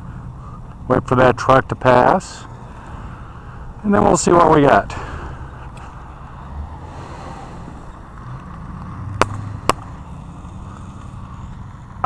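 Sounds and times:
truck passing: 0.0s - 12.0s.

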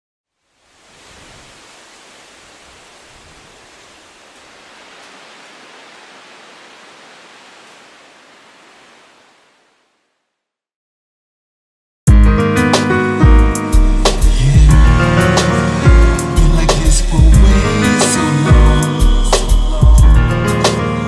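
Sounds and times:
steady rushing hiss: 0.4s - 9.9s.

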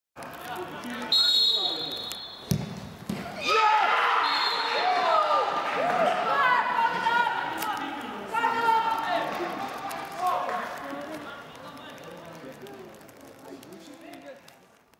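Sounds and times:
football kick thud: 2.4s - 3.3s
crowd shouting and cheering: 3.2s - 11.2s.

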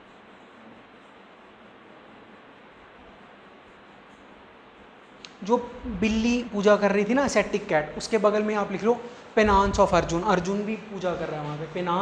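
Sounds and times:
faint room tone hiss: 0.0s - 12.0s.

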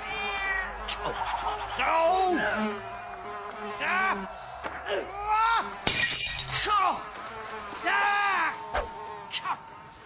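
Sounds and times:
pitched whining sounds: 0.0s - 10.0s.

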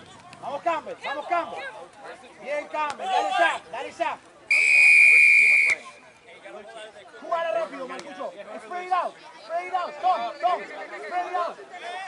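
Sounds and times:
players shouting: 2.7s - 6.0s
referee's whistle blast: 4.5s - 5.9s.

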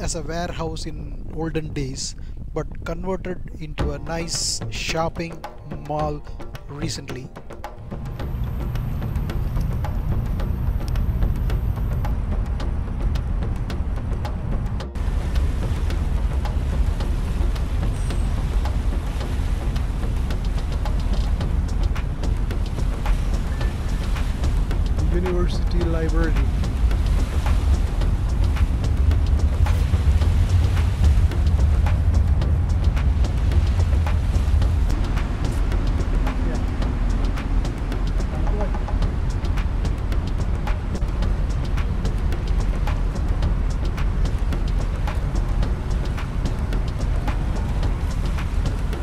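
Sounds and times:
boat engine rumble: 0.0s - 49.0s
wind buffeting microphone: 8.0s - 49.0s.

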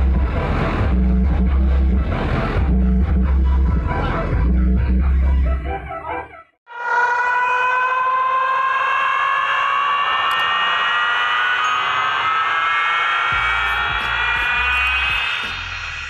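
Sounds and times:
loud rising electronic tone: 6.7s - 16.0s.

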